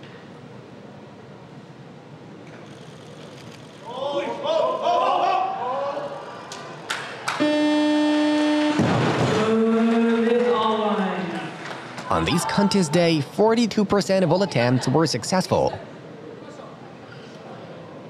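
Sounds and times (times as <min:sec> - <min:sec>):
electronic buzzer: 0:07.4 - 0:08.9
crowd cheering: 0:08.6 - 0:15.7
voices shouting: 0:12.0 - 0:13.2.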